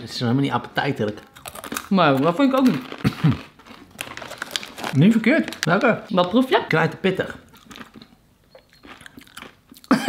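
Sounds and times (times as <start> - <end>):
chewing crunchy chips: 1.2 - 5.7, 7.4 - 10.0
person speaking: 4.9 - 7.5.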